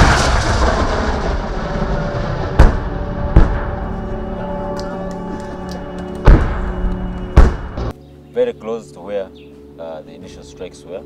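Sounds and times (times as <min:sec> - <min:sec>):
artillery explosions: 0:00.0 - 0:04.8, 0:06.2 - 0:07.9.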